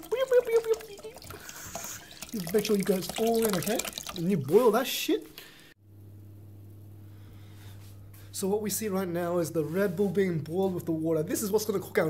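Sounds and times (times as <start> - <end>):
liquid pouring into water: 0.0 - 5.7.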